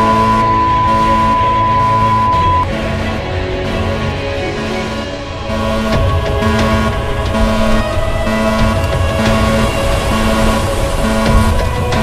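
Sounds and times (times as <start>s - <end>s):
high test tone: 0.0s - 4.8s
background music: 0.0s - 12.0s.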